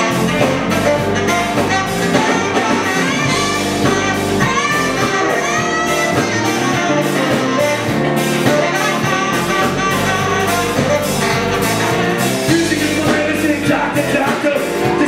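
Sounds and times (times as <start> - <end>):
drums: 0.0 - 15.0
electric guitar: 0.0 - 15.0
keyboard: 0.0 - 15.0
saxophone: 0.0 - 15.0.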